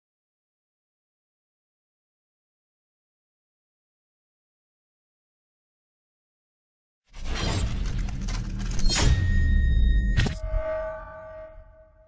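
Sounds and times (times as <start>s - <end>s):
dense crackling and breaking: 7.2s - 9.0s.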